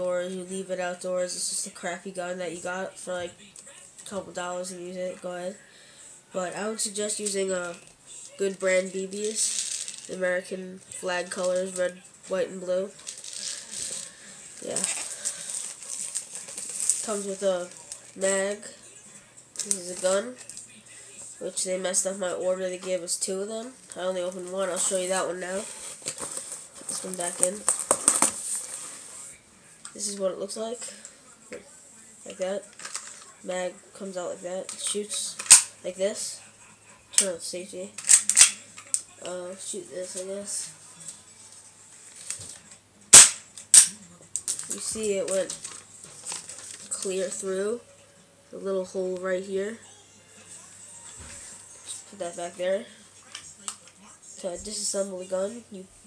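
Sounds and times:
plastic packaging clicking and crinkling: 0:13.0 - 0:18.1, 0:25.8 - 0:28.4, 0:32.7 - 0:33.3, 0:38.0 - 0:39.0, 0:42.1 - 0:47.1
rustling: 0:13.0 - 0:18.1
airsoft pistol firing: 0:43.1 - 0:43.9.

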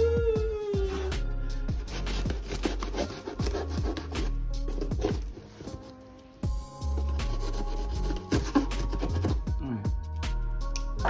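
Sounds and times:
knife sawing through cardboard: 0:01.7 - 0:06.0, 0:07.0 - 0:09.4.

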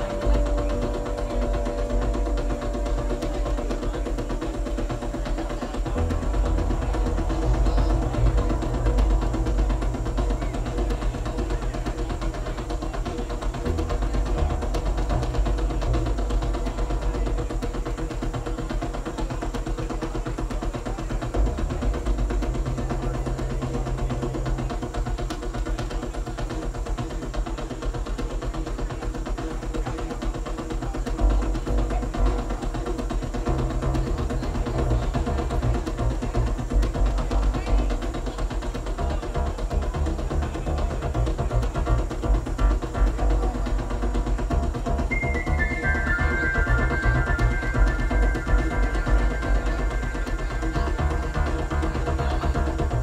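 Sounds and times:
deep synthesizer bass notes: 0:00.0 - 0:29.9, 0:31.1 - 0:53.0
held mid-range synthesizer tones: 0:00.0 - 0:53.0.

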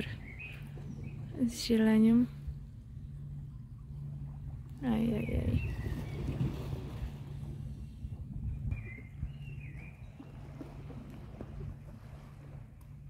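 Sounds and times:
wind on microphone: 0:05.1 - 0:12.5
small waves lapping on rocks: 0:05.6 - 0:07.5, 0:10.1 - 0:13.0.

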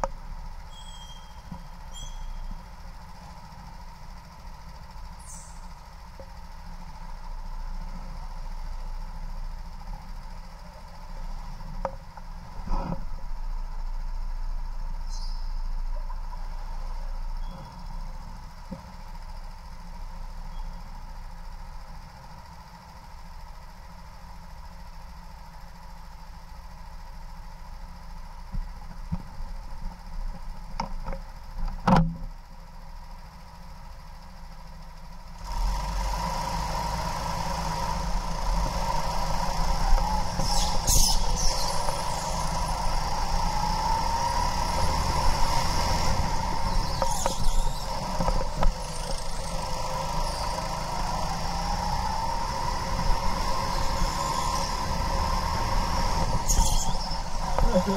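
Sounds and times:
go-kart engine running: 0:00.0 - 0:57.9.

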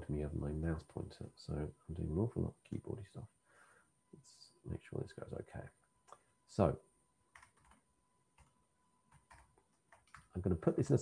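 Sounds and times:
faint keyboard typing: 0:07.3 - 0:11.0.

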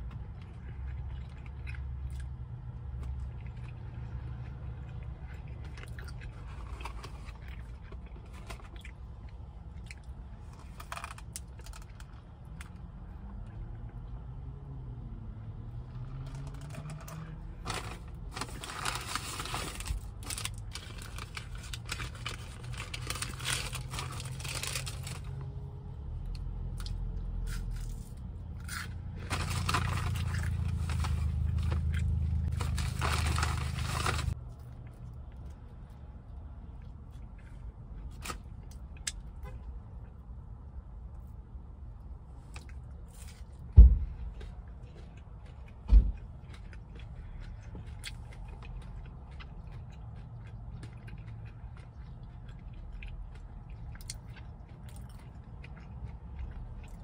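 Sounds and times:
crunchy chewing: 0:00.0 - 0:14.1, 0:15.9 - 0:25.6, 0:42.4 - 0:57.0
low hum inside a car: 0:00.0 - 0:57.0
food wrappers crinkling and tearing: 0:05.6 - 0:09.0, 0:09.8 - 0:12.8, 0:16.2 - 0:25.5, 0:26.8 - 0:35.6.

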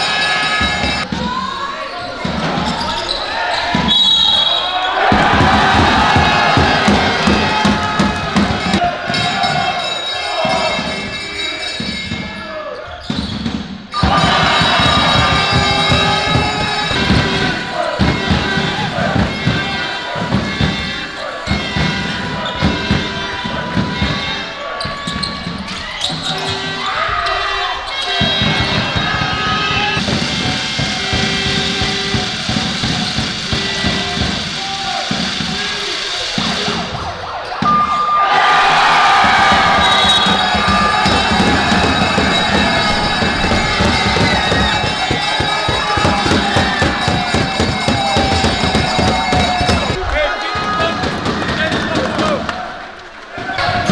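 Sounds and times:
crowd noise: 0:00.0 - 0:53.9
drum beat: 0:05.0 - 0:09.5, 0:13.4 - 0:24.5, 0:28.1 - 0:36.9, 0:38.8 - 0:52.8.

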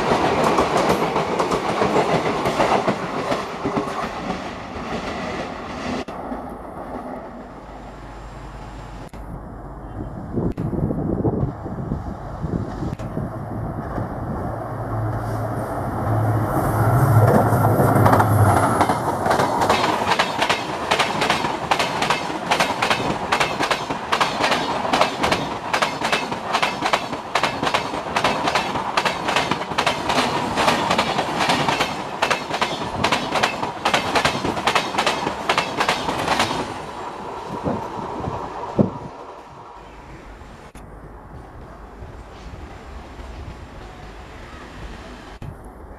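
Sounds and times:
train wheels clickety-clack: 0:00.0 - 0:06.0, 0:17.2 - 0:36.8
diesel locomotive engine passing: 0:00.0 - 0:45.9.

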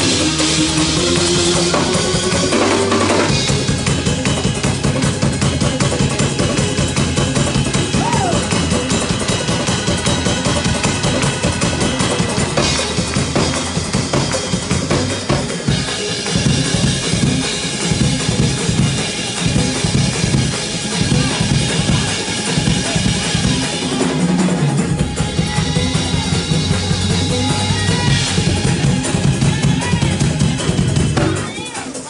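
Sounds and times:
church band playing gospel music: 0:00.0 - 0:32.0
drum kit fast driving beat: 0:00.0 - 0:32.0.

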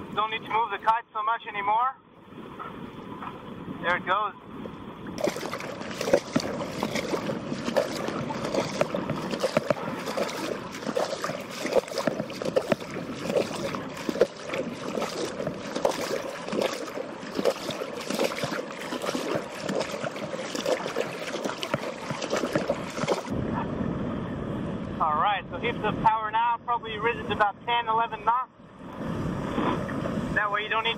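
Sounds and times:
seawater splashing and lapping: 0:02.2 - 0:23.4.

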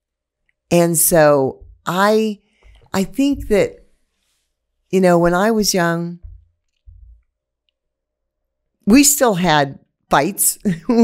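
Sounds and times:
woman speaking: 0:00.7 - 0:03.8, 0:04.9 - 0:06.4, 0:08.9 - 0:11.0
faint low thumps: 0:01.5 - 0:01.9, 0:06.1 - 0:07.2.

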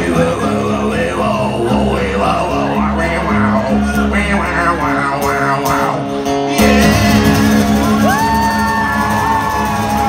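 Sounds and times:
man singing: 0:00.0 - 0:08.2
acoustic guitars strummed: 0:00.0 - 0:10.0.

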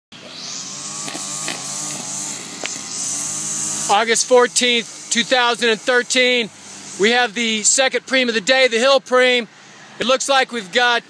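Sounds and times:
car approaching on road: 0:00.2 - 0:11.0
steady high-pitched buzz: 0:00.2 - 0:11.0.

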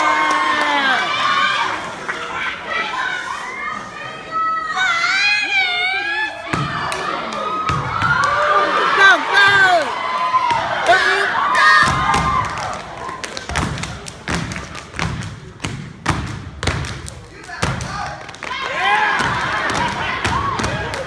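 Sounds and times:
audience shouts and whoops: 0:00.0 - 0:03.9, 0:04.5 - 0:13.2, 0:18.5 - 0:21.0.

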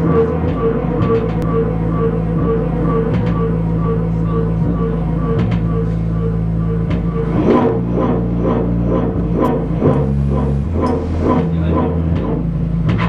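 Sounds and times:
short repeating pulse: 0:00.0 - 0:12.8
low droning hum: 0:00.0 - 0:13.0.

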